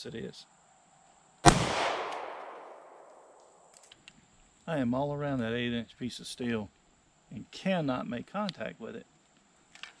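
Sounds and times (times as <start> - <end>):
pistol shot echo: 1.4 - 3.4.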